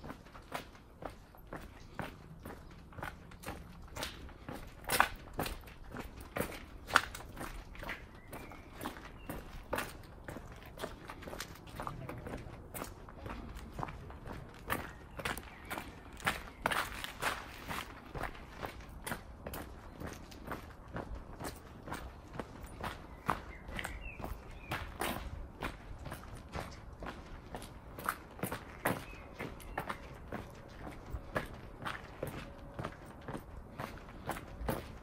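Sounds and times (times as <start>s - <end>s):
footsteps on cobblestones: 0.0s - 35.0s.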